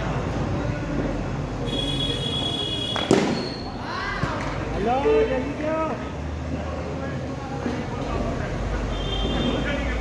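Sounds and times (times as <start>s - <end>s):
men talking: 4.6s - 10.0s.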